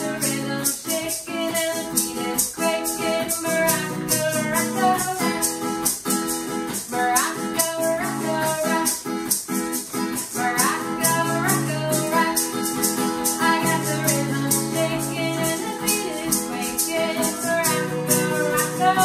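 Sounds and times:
woman singing: 0.0s - 5.8s, 6.7s - 19.0s
acoustic guitar strumming: 0.0s - 19.0s
maraca shaken: 0.0s - 19.0s.

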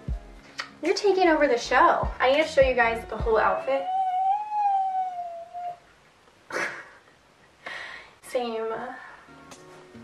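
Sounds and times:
dog whining: 3.4s - 5.9s.

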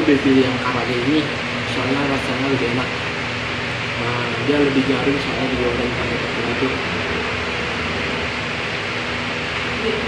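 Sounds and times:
ventilation fans rushing: 0.0s - 10.0s.

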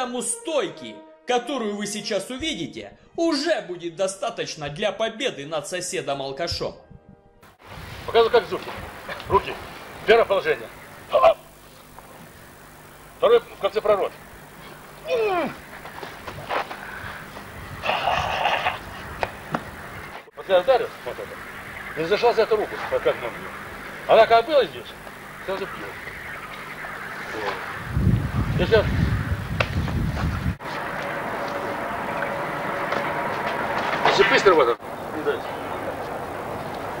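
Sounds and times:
faint hum: 6.5s - 37.0s
tape hiss: 7.4s - 37.0s
breathy hiss of exhale: 16.7s - 18.6s
low rumble and knocks on microphone: 29.5s - 30.6s.

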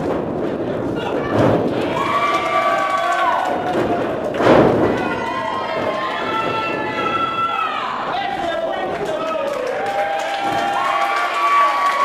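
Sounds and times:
bodies thudding onto ring canvas: 3.8s - 7.4s.

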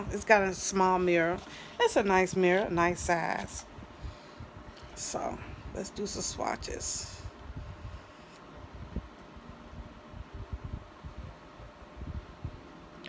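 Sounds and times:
steady low hiss: 0.0s - 13.0s.

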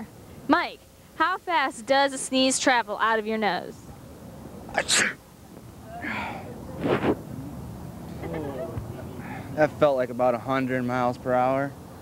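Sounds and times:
man sneezing: 4.7s - 5.2s.

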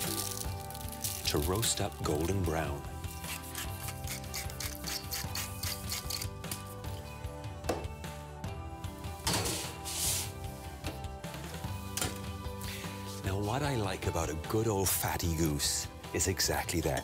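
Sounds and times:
pepper mill grinding: 0.0s - 1.8s, 3.3s - 6.4s
background music: 0.0s - 17.0s.

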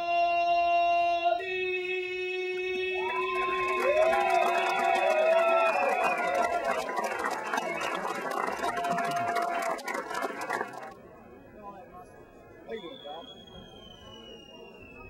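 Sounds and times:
crowd clapping and cheering: 3.0s - 11.0s.

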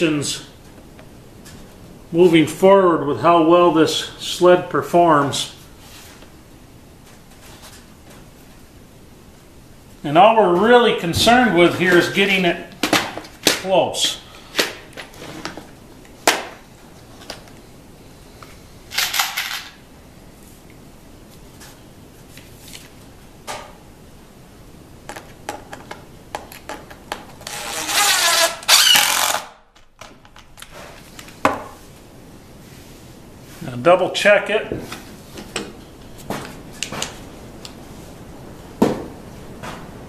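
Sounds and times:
impact driver driving screw: 27.6s - 29.5s.

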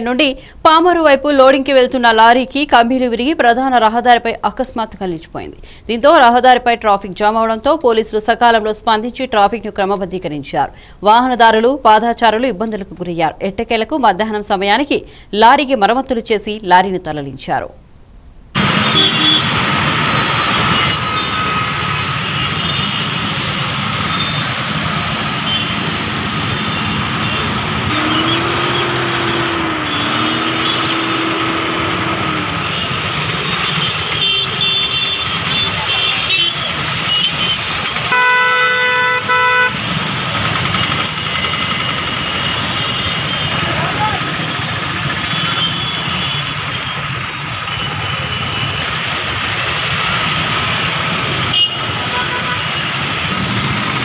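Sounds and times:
loud horn blast: 18.6s - 19.6s, 25.4s - 39.8s, 51.5s - 52.9s
vehicle horns honking: 18.6s - 39.8s, 40.8s - 43.8s, 45.2s - 47.0s, 51.4s - 52.9s
motorbikes and rickshaws running: 18.6s - 54.0s.

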